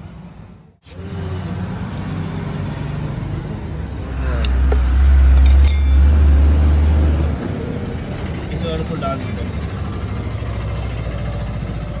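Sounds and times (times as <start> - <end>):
engine idling: 7.6 - 12.0.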